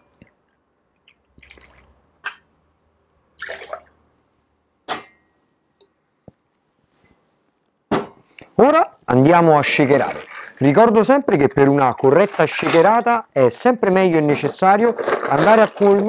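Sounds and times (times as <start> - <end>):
liquid splashing: 3.4 - 3.9, 9.8 - 10.7.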